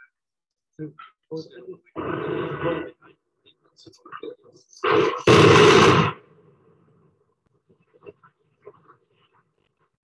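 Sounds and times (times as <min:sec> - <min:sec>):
loud demolition blasts: 0:04.9 - 0:06.3.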